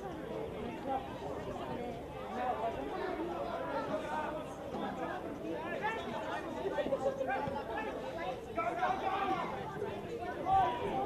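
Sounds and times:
babble of voices: 0:00.0 - 0:11.0.

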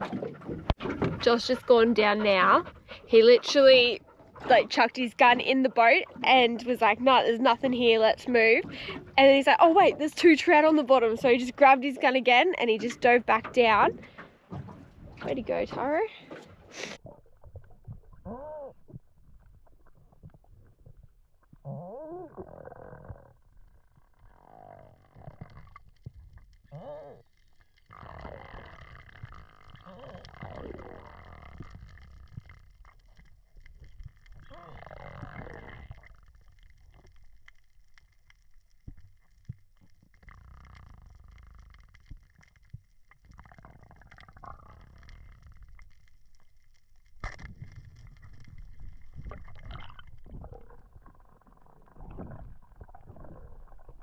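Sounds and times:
low underwater rumbling: 0:00.0 - 0:54.0
underwater clicks: 0:24.8 - 0:54.0.

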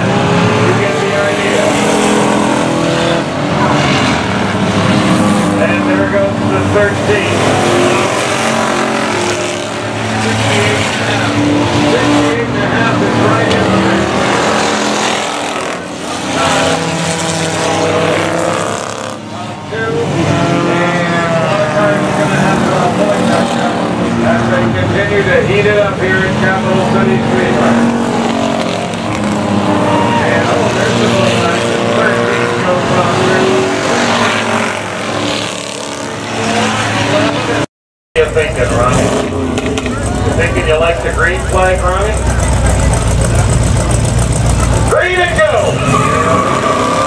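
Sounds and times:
race car engines revving: 0:00.0 - 0:47.0.

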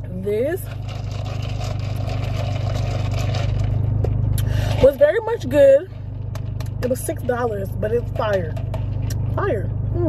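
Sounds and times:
car engine idling hum: 0:00.0 - 0:10.0.

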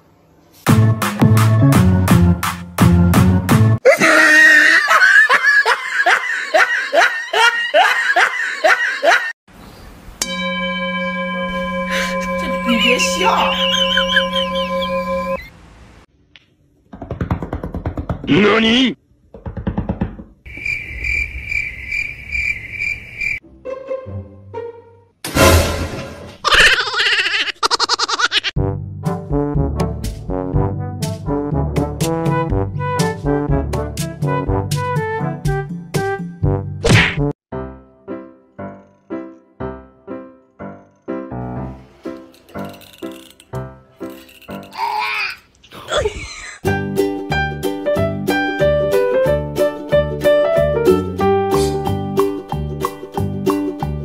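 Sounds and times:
high-pitched chirping trill: 0:10.3 - 0:15.5
short wavering cry: 0:11.3 - 0:15.5
music with piano-like notes: 0:37.5 - 0:44.3, 0:46.7 - 0:54.0.

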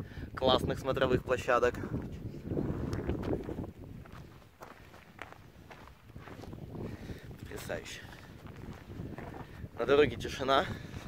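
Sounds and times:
footsteps on gravel: 0:01.9 - 0:10.0.

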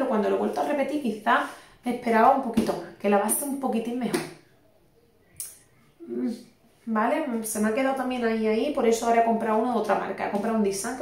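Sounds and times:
woman speaking: 0:00.0 - 0:04.4, 0:06.0 - 0:11.0.

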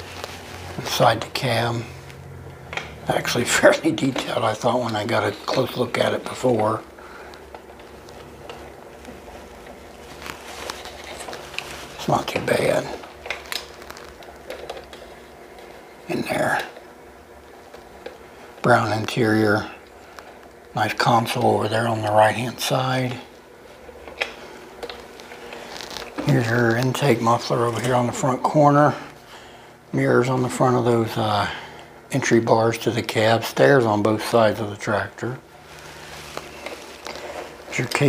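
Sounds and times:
low steady hum: 0:00.0 - 0:38.0.

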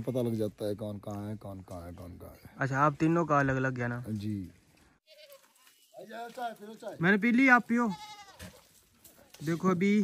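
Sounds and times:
goats and sheep bleating: 0:05.0 - 0:06.3, 0:07.7 - 0:08.7.

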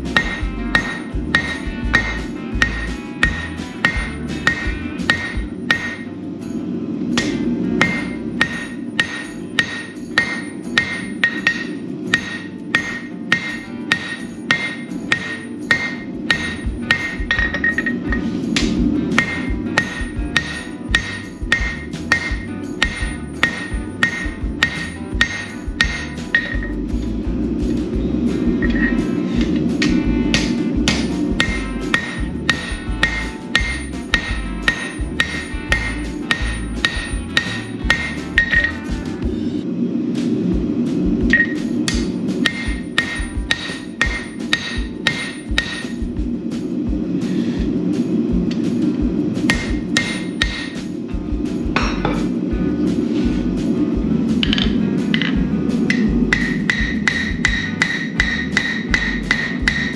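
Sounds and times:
hammer striking hot steel on anvil: 0:00.0 - 0:27.2, 0:28.4 - 0:39.1, 0:41.2 - 0:47.4, 0:49.4 - 0:51.0, 0:51.6 - 0:52.4, 0:54.4 - 0:59.9.

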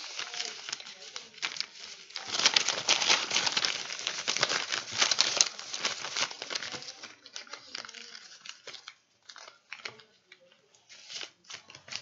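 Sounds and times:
plastic bag crinkling: 0:00.0 - 0:10.2
paper rustling: 0:00.0 - 0:12.0.

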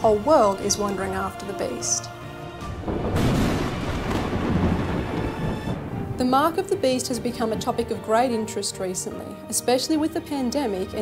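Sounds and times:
thunder rumble: 0:02.6 - 0:08.5.

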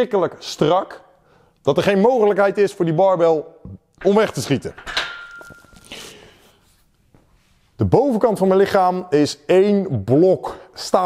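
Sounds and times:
barbell clanking on metal rack: 0:04.0 - 0:05.7.

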